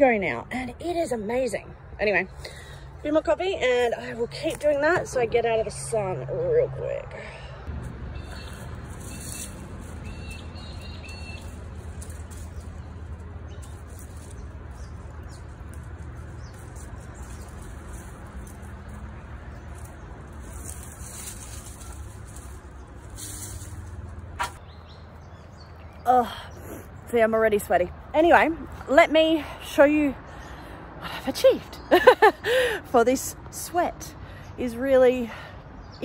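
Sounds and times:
steady low rumble: 1.0 - 26.0
birds chirping: 6.8 - 33.3.

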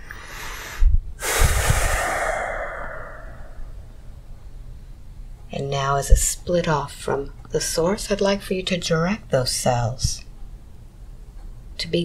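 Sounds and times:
long loud exhale: 0.0 - 4.0
person breathing in deeply: 0.0 - 4.0.

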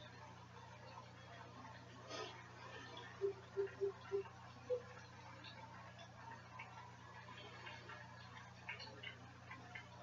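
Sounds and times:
aquarium filter humming: 0.0 - 10.0.

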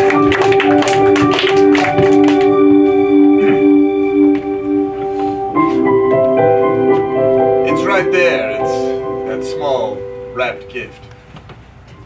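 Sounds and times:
organ music: 0.0 - 12.0.

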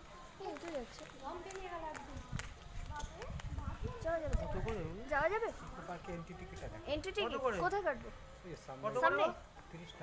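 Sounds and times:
people talking: 0.2 - 8.0
wind rumbling on microphone: 1.5 - 5.7.

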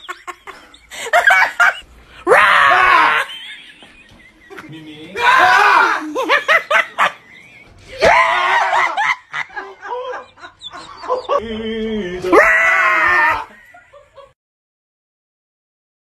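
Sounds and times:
people laughing: 0.0 - 14.4
people screaming: 2.2 - 3.6, 5.0 - 6.7, 7.8 - 13.9.

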